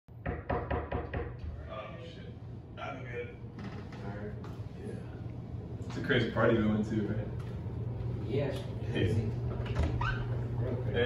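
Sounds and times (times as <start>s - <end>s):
knuckles knocking on a door: 0.2s - 1.4s.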